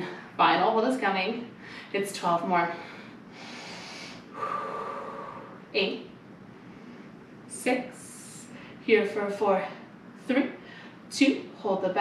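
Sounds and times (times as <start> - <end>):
woman breathing hard: 2.7 - 5.6.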